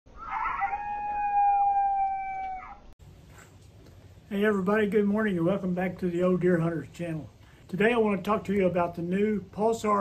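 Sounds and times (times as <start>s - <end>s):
dog howling: 0.1s - 2.9s.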